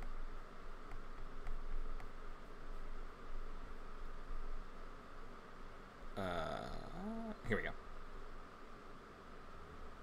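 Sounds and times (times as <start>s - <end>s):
microphone hiss and hum: 0.0s - 10.0s.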